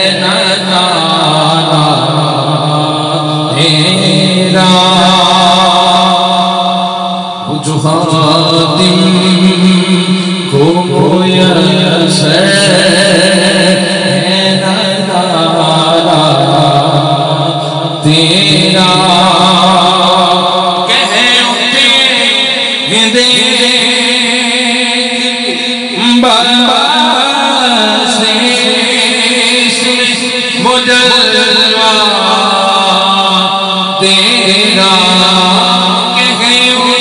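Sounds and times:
man singing into a microphone: 0:00.0 - 0:37.0.

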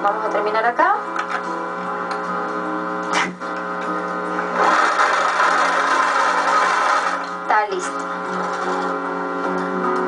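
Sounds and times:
guitar music: 0:00.0 - 0:10.0
sewing machine stitching: 0:04.5 - 0:07.3, 0:08.3 - 0:08.9.

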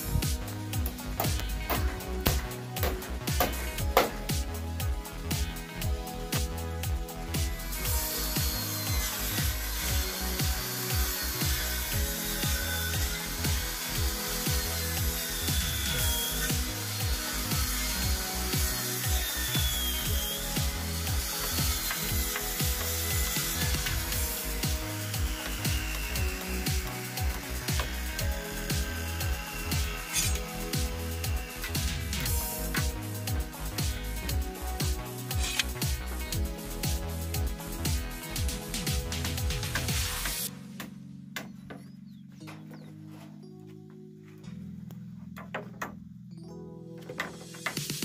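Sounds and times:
circular saw cutting wood: 0:00.0 - 0:40.5
background music with steady beat: 0:00.0 - 0:48.0
sharp knocks: 0:45.4 - 0:46.0.

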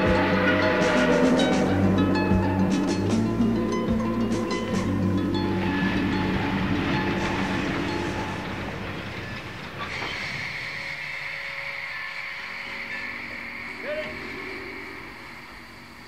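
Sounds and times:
steady high tone: 0:00.0 - 0:08.9
music: 0:00.0 - 0:16.0
rumbling rattling noise: 0:00.0 - 0:16.0.

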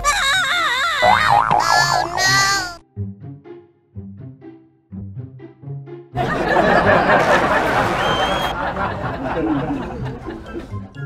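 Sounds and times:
comic wobbling tone: 0:00.9 - 0:02.8
quiet music: 0:08.7 - 0:11.0.

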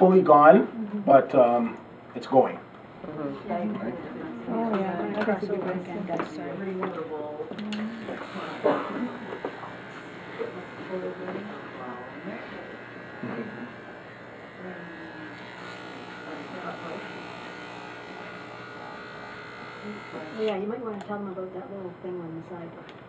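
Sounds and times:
electric hair clippers buzzing: 0:07.6 - 0:21.1.

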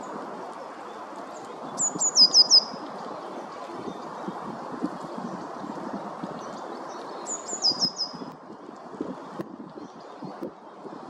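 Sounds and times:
small bird calling: 0:01.8 - 0:02.9, 0:07.2 - 0:08.2.

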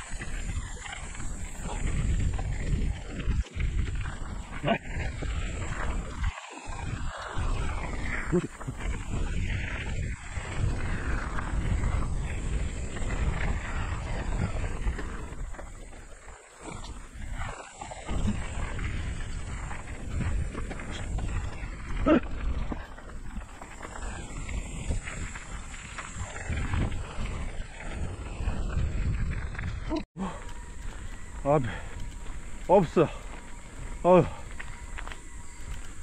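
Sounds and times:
tyres rolling on gravel: 0:00.0 - 0:36.0
wind buffeting microphone: 0:00.0 - 0:36.0.

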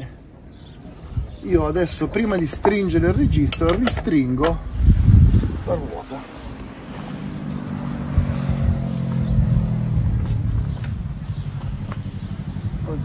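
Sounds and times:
vehicle engine running: 0:06.0 - 0:13.0.

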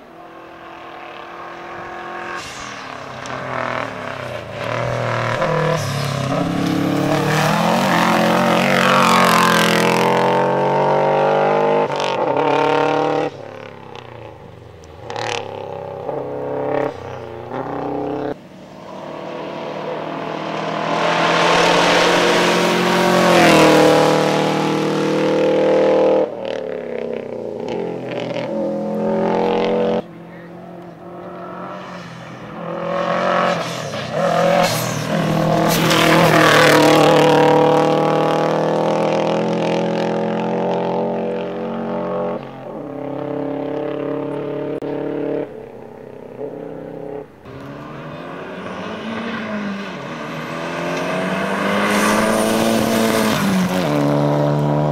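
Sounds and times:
rally car engine revving: 0:00.6 - 0:54.9.

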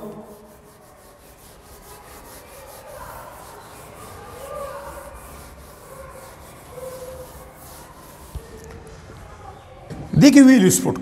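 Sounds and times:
eraser rubbing on whiteboard: 0:00.0 - 0:08.8.

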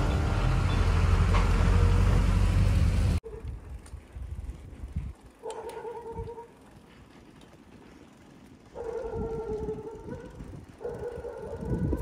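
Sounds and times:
tyres rolling on rough road: 0:00.0 - 0:03.2.

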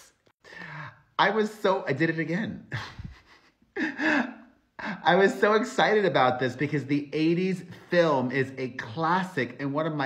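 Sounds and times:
man gasping: 0:00.4 - 0:01.2, 0:03.8 - 0:05.0.

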